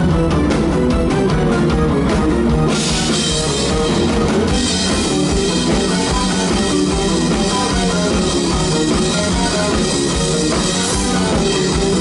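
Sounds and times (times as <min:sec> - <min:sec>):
bass guitar: 0:00.0 - 0:12.0
drum kit: 0:00.0 - 0:12.0
electric guitars: 0:00.0 - 0:12.0
keyboards: 0:00.0 - 0:12.0.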